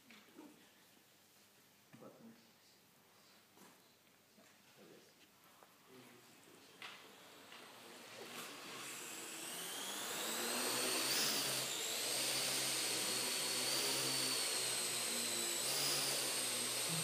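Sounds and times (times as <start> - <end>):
drone rotors whining: 7.2 - 17.0.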